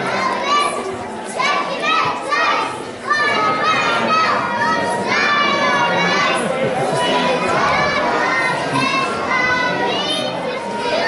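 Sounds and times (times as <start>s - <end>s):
audience chatter: 0.0s - 11.0s
children calling out: 0.0s - 11.0s.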